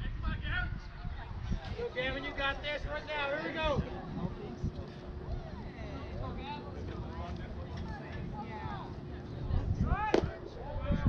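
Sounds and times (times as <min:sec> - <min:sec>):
spectators talking and calling out: 0:00.0 - 0:11.0
bat cracking ball: 0:10.1 - 0:10.4.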